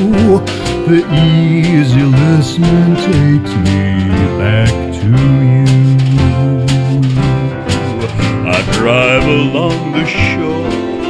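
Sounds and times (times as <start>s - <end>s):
acoustic string-band music: 0.0s - 11.0s.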